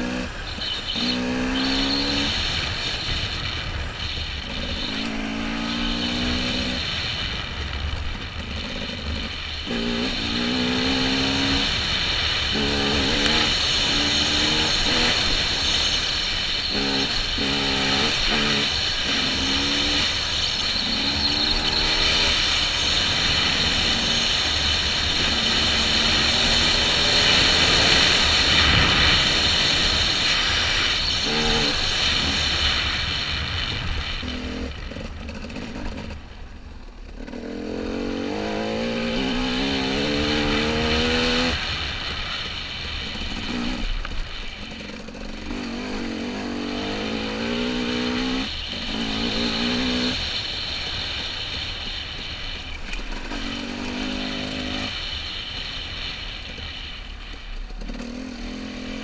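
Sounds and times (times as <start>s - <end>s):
wind noise on microphone: 0.0s - 37.2s
dirt bike engine revving: 0.0s - 56.8s, 57.6s - 59.0s.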